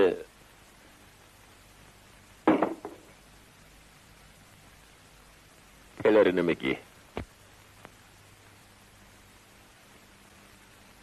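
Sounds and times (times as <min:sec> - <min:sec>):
small knock: 0:02.5 - 0:03.1.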